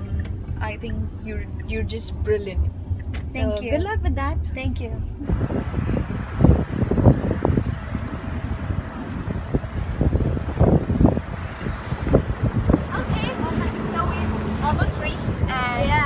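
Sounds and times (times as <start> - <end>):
low thumps and rumbles: 0.0 - 16.0
outdoor rushing noise: 4.0 - 16.0.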